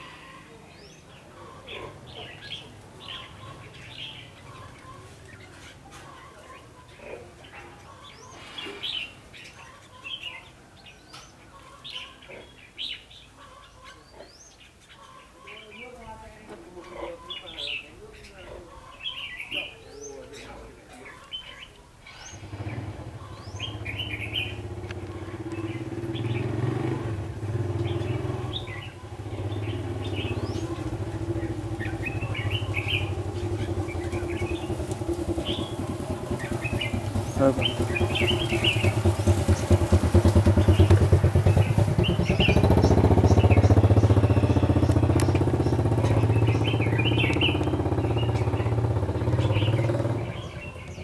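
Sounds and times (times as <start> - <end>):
bird song chirping: 0.0 - 51.0
vehicle engine droning: 22.2 - 51.0.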